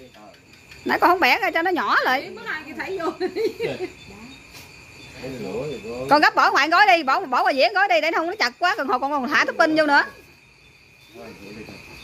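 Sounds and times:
insect trilling: 0.0s - 12.0s.

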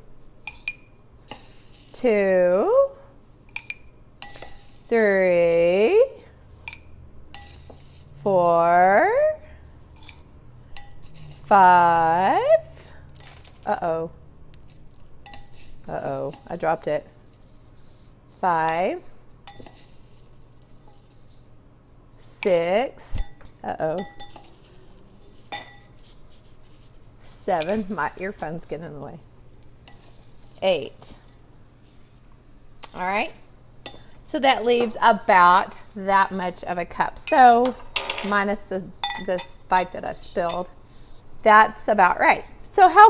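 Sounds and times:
metal teaspoon clinking on cup: 0.4s - 1.9s, 3.5s - 4.9s, 14.6s - 16.6s, 19.4s - 21.1s, 23.2s - 25.9s, 27.6s - 28.0s, 37.3s - 40.8s
spoon clinking on glass dish: 0.5s - 1.0s, 3.5s - 4.6s, 23.4s - 24.6s, 37.3s - 39.6s, 40.5s - 40.7s
scooping dry cereal: 1.3s - 2.0s, 4.4s - 4.9s, 7.4s - 8.2s, 19.5s - 22.2s, 29.9s - 31.0s.

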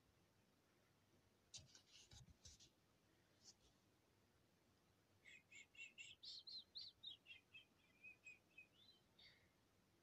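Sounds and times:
bird chirping: 5.2s - 9.6s.

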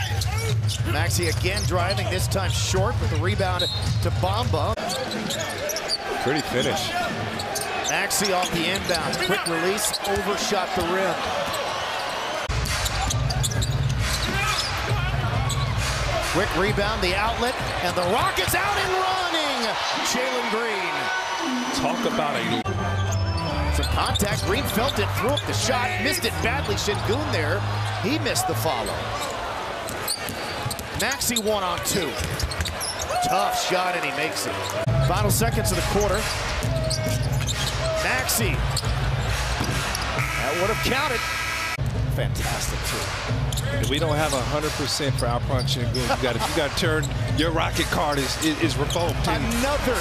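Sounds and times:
sneakers squeaking on hardwood: 0.0s - 2.0s, 4.8s - 15.8s, 28.8s - 33.3s, 36.2s - 38.0s, 38.6s - 40.4s
arena crowd noise: 0.0s - 50.0s.

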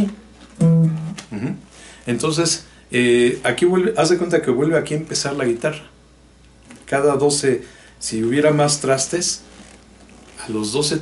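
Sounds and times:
low electric guitar note plucked: 0.0s - 1.5s.

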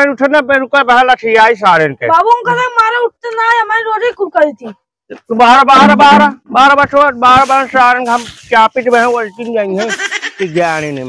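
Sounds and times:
person's wavering voice: 2.1s - 2.9s.

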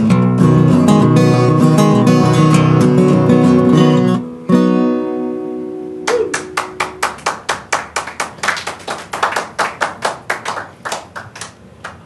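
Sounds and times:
guitar chord ringing: 0.0s - 7.2s
people clapping: 6.0s - 12.0s.

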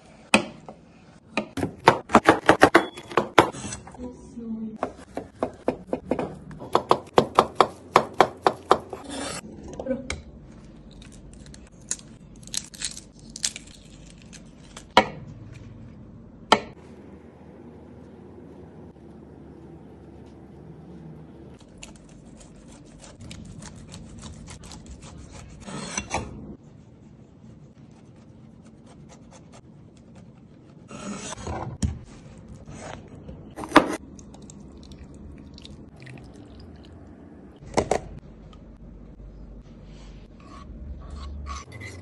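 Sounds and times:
eggshell cracking and peeling: 10.9s - 15.0s.

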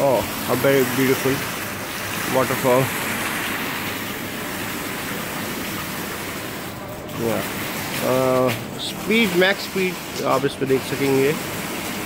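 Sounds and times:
water splashing into a basin: 0.0s - 12.0s.

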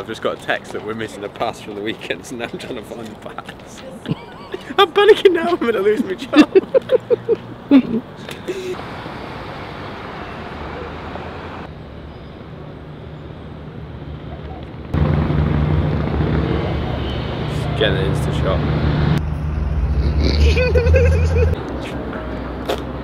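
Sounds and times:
traffic engine rumble: 0.0s - 23.0s.

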